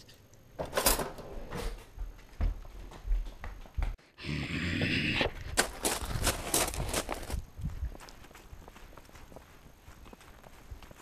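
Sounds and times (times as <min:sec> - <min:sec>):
footsteps outdoors: 0:05.2 - 0:11.0.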